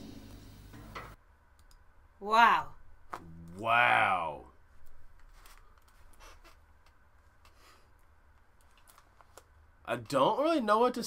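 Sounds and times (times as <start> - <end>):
person exclaiming: 3.3 - 4.4.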